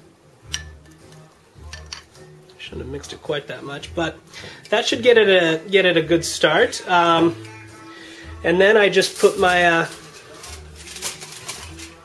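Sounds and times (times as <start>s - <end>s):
foil rustling and crinkling: 8.9s - 12.0s.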